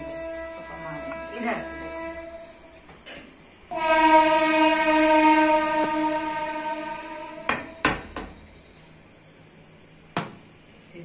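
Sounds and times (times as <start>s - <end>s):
loud steady pitched tone: 0.0s - 10.8s.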